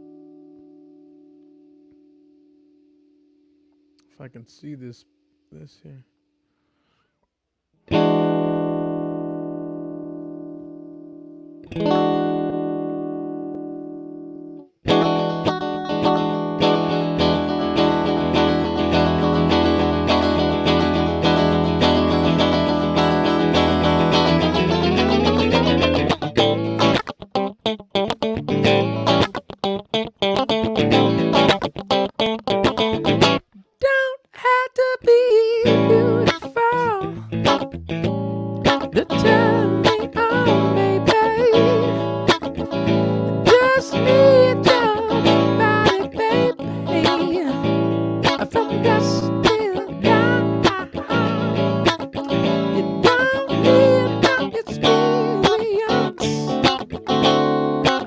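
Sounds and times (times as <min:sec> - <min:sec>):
electric guitar strumming: 0:07.8 - 0:33.6, 0:35.6 - 0:58.0
man singing: 0:33.8 - 0:37.3, 0:38.9 - 0:42.0, 0:43.4 - 0:47.6, 0:48.3 - 0:51.6, 0:52.7 - 0:56.6.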